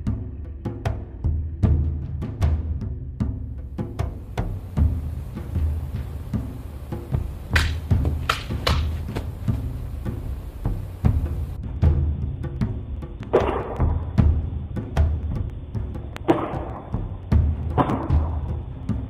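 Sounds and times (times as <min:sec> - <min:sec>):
percussive music with deep drum beat: 0:00.0 - 0:19.0
sharp hits: 0:04.0 - 0:11.6.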